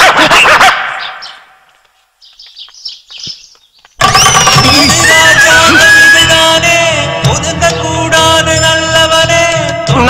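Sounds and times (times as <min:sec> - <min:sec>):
sliding whistle-like tone: 0:04.0 - 0:06.4
comedy music cue: 0:04.0 - 0:06.8.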